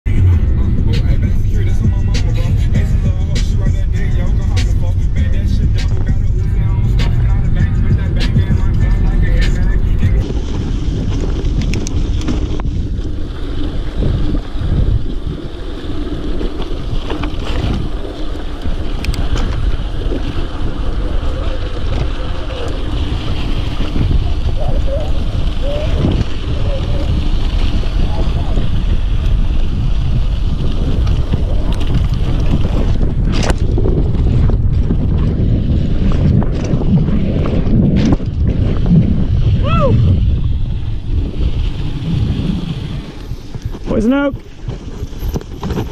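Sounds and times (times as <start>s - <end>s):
wind buffeting microphone: 0.0s - 45.9s
music with a beat: 0.1s - 10.2s
bike tyres rumbling on dirt: 0.1s - 45.9s.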